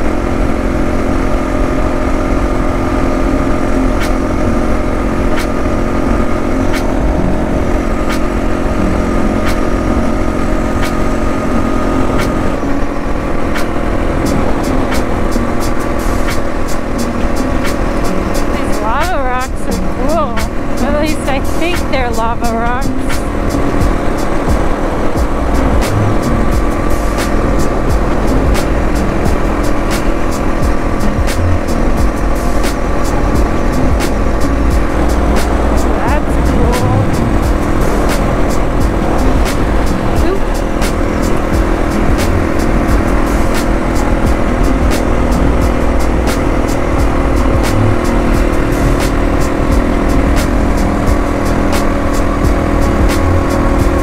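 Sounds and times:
motorcycle engine cruising: 0.0 - 54.0
road and wind noise: 0.0 - 54.0.

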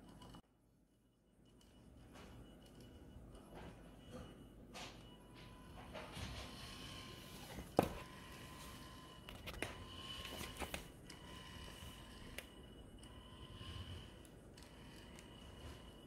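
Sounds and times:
small motor whine: 2.1 - 16.0.

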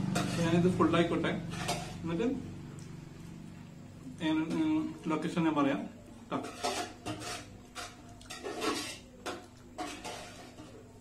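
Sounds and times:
fingers scraping rice on a plate: 6.4 - 9.1.

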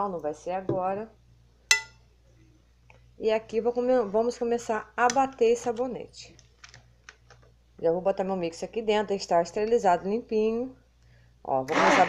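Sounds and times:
tableware clinking: 1.7 - 2.0.

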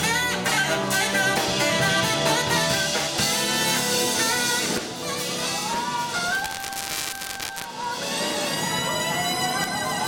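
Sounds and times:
live band playing: 0.0 - 10.0
trumpet: 3.2 - 10.0.

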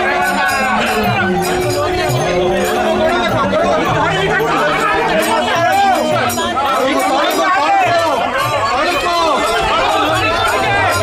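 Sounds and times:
men chanting and calling: 0.0 - 11.0.

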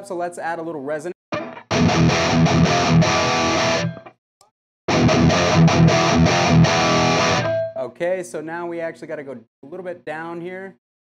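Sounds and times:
distorted electric guitar riff: 1.4 - 4.2, 4.9 - 7.8.

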